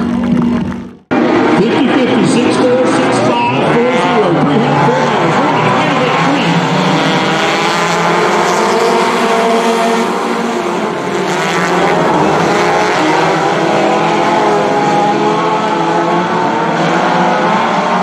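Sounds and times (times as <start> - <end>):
racing car engines: 0.0 - 18.0.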